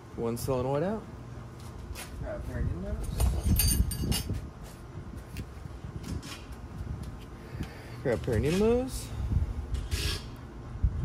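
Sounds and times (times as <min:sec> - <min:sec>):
metal parts clicking and clinking: 0:03.1 - 0:04.3.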